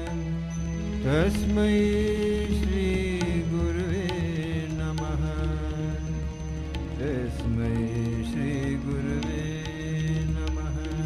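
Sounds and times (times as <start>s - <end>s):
instrumental drone: 0.0s - 11.0s
person chanting: 7.0s - 11.0s.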